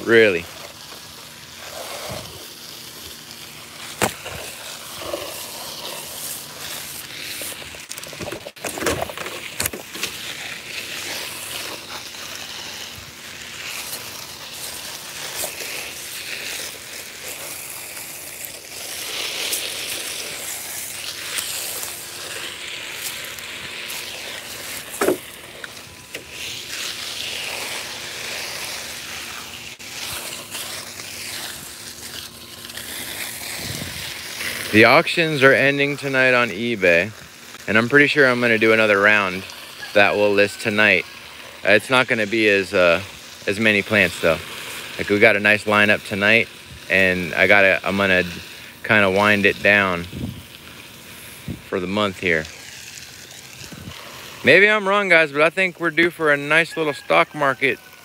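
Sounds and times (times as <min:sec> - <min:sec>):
hose spraying water on plants: 0:00.0 - 0:58.0.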